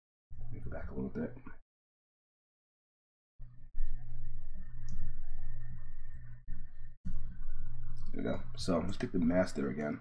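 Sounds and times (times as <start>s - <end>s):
steady low hum: 3.4s - 10.0s.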